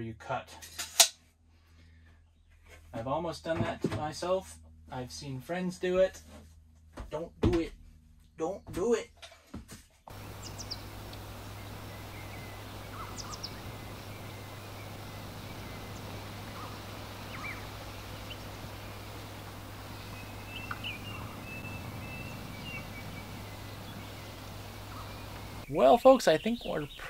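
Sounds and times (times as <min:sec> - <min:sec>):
background hiss with low hum: 0:10.1 - 0:27.0
bird twittering call: 0:10.1 - 0:27.0
small birds chirping: 0:10.1 - 0:27.0.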